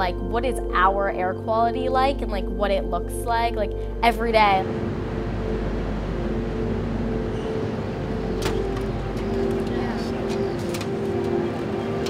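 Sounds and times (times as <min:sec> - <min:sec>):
held tones shifting in pitch: 0:00.0 - 0:12.0
street traffic: 0:04.2 - 0:12.0.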